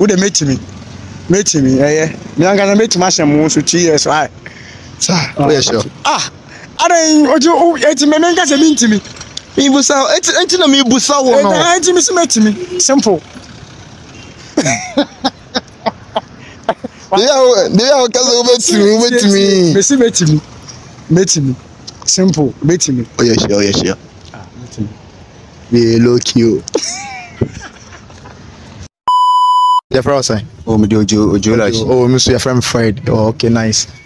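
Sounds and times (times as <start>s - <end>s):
man talking: 0.0s - 4.4s, 5.0s - 13.4s, 17.0s - 25.0s, 25.6s - 26.8s, 29.9s - 34.0s
street traffic: 0.0s - 29.2s, 29.9s - 34.0s
censor bleep: 29.1s - 29.8s.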